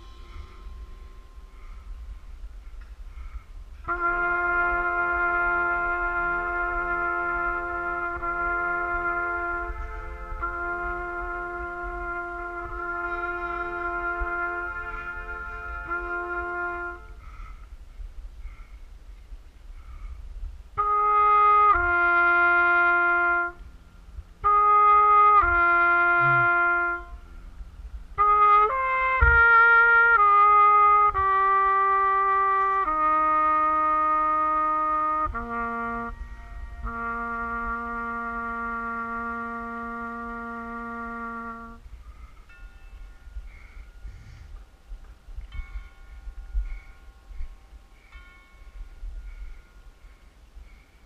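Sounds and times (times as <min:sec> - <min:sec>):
trumpet playing: 0:00.0 - 0:02.4, 0:03.1 - 0:17.6, 0:20.8 - 0:41.9.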